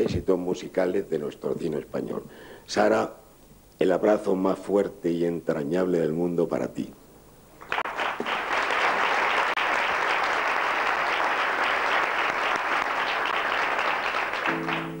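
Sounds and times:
audience applauding: 7.6 - 15.0.

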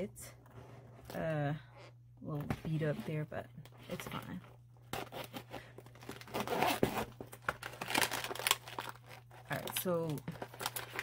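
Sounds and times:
plastic pouch crinkling: 5.6 - 11.0
zipper pulled open: 6.3 - 7.1.

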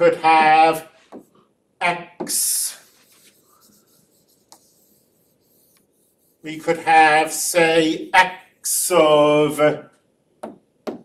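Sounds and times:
stylus scratching on screen: 2.2 - 9.1
stylus tap: 10.4 - 11.0.

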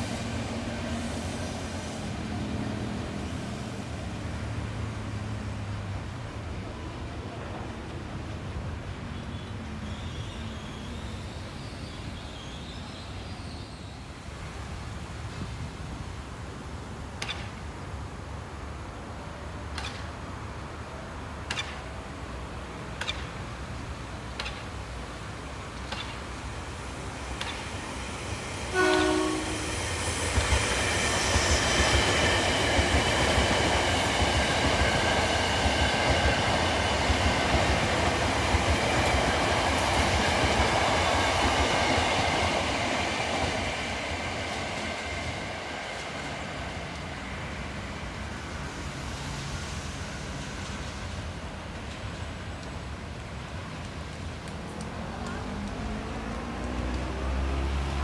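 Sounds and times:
train wheels rumbling on rails: 19.4 - 58.0
train horn blast: 28.7 - 29.8.

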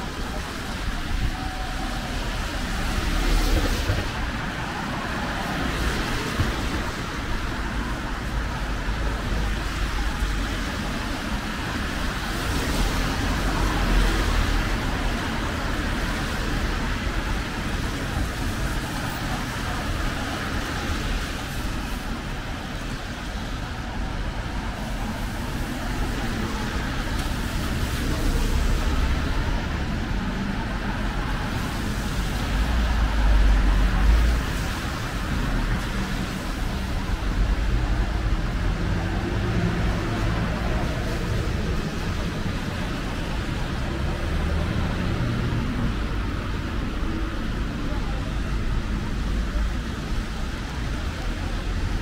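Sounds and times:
low traffic rumble: 0.0 - 52.0
tyres hissing on wet road: 0.0 - 52.0.

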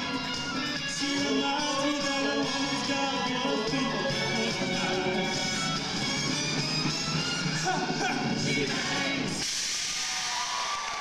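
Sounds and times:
pop dance track with singing: 0.0 - 9.6
audience applauding and cheering: 8.6 - 11.0.

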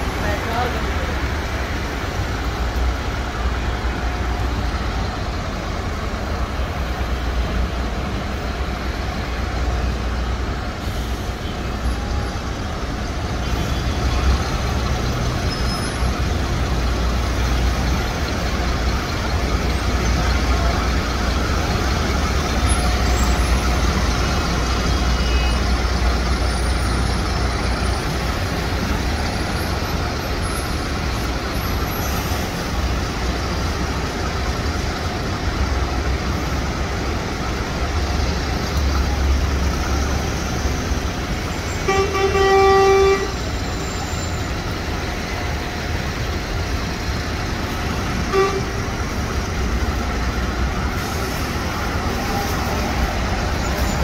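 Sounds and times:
road traffic hum: 0.0 - 54.0
car horn honking: 41.8 - 43.5, 48.2 - 48.9.

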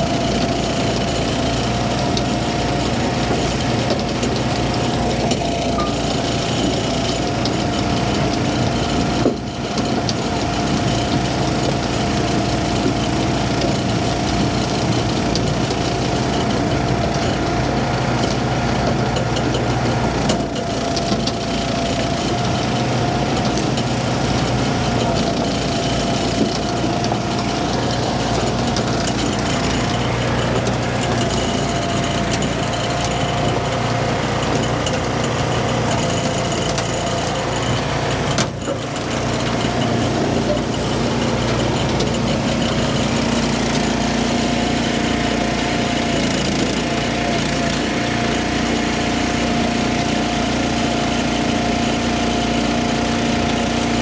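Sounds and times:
conveyor whine: 0.0 - 17.7
small gasoline engine running: 0.0 - 54.0.

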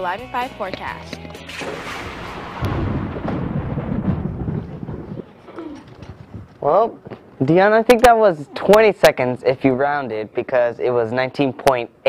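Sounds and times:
thunder rumbling: 1.7 - 6.6.

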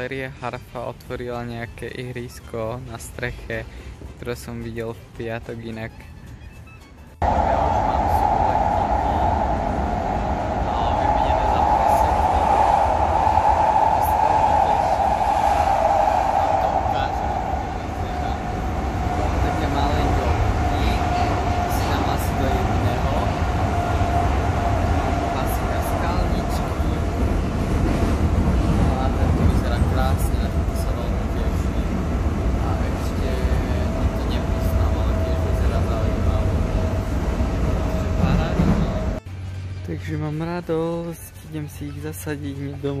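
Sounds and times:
metro train rumble: 7.1 - 39.3
train whine: 7.2 - 39.2.

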